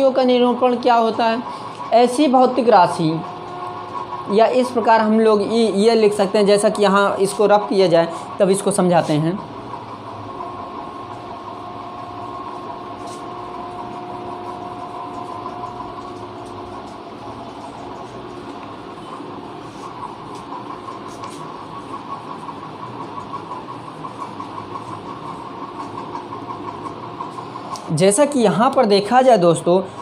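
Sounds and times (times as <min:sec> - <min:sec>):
steady mechanical hum: 0:00.0 - 0:30.0
cloth wiping a whiteboard: 0:12.8 - 0:17.0, 0:19.6 - 0:23.2.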